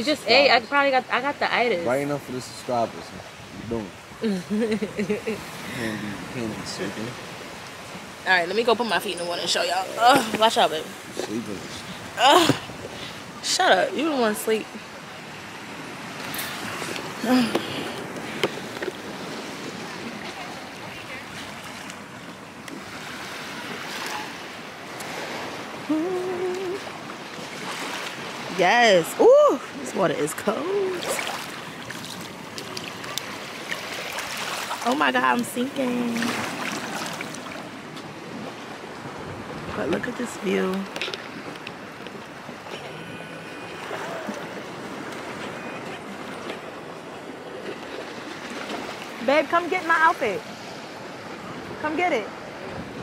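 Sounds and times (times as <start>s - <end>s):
sea surf washing onto beach: 0.0s - 53.0s
wind on microphone: 2.8s - 34.4s, 35.3s - 49.5s, 50.2s - 53.0s.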